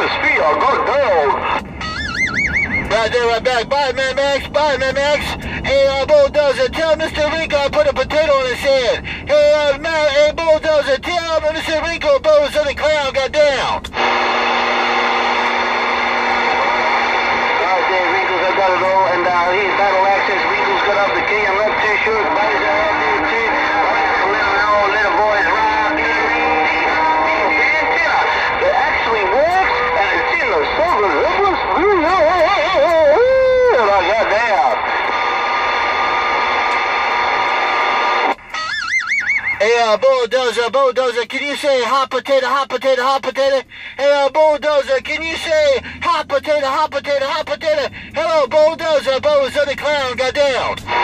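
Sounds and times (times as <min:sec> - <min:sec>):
radio static hiss: 0:00.0 - 0:01.6, 0:02.9 - 0:33.0, 0:33.8 - 0:38.4, 0:46.8 - 0:51.0
faint steady tones: 0:00.0 - 0:51.0
person talking: 0:16.5 - 0:34.8.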